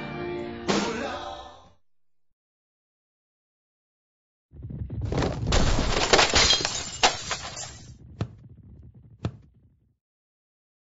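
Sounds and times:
loud smashing crash: 4.6s - 7.9s.

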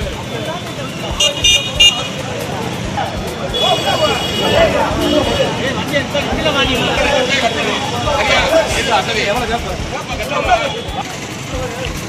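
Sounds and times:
busy street noise: 0.0s - 12.0s
crowd chatter: 0.0s - 12.0s
high-pitched vehicle horn toots: 1.2s - 2.2s, 3.5s - 5.6s.

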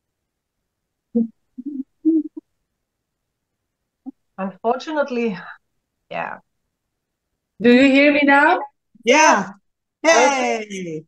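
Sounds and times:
muffled voice over video call: 10.0s - 11.0s.

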